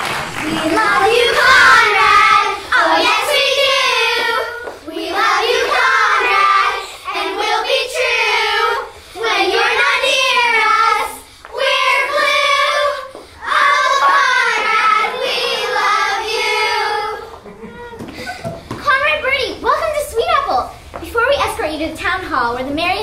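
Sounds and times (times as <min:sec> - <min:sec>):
children's choir singing: 0:00.0 - 0:17.5.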